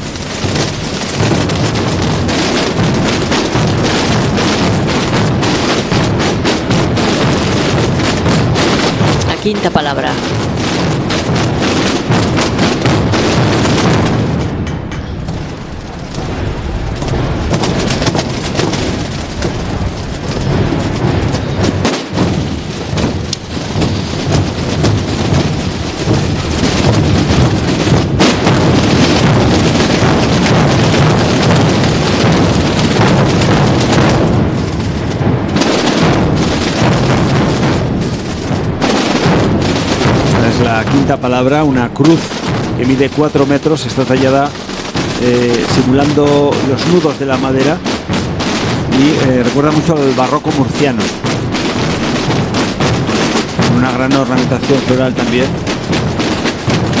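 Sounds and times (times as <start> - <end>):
massed drumming with bass drums: 0.0 - 57.0.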